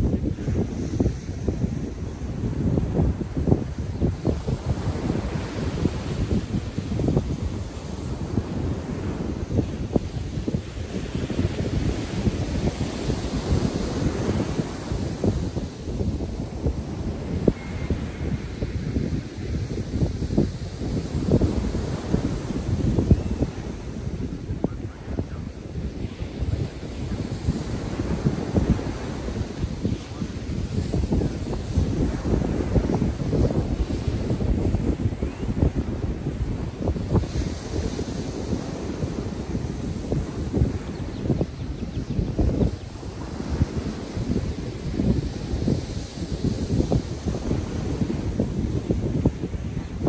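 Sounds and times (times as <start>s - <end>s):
ocean surf breaking: 0.0s - 50.0s
wind buffeting microphone: 0.0s - 50.0s.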